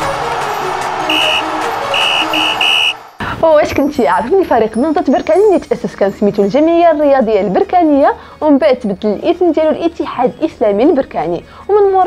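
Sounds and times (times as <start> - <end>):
music bed: 0.0 - 6.7
short high beeping tones: 2.0 - 3.0.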